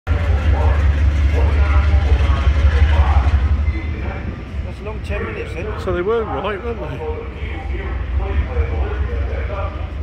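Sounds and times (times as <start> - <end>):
diesel locomotive rumbling: 0.1 - 10.0
faint voices: 0.1 - 10.0.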